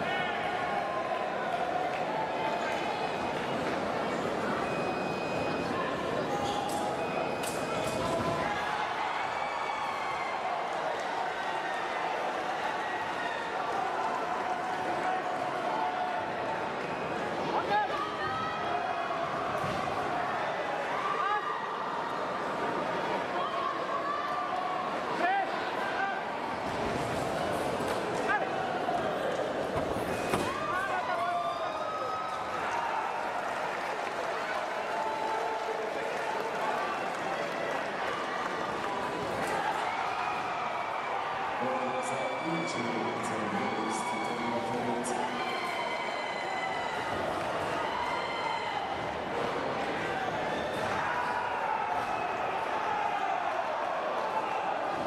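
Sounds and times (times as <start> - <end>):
hubbub of many voices: 0.0 - 55.0.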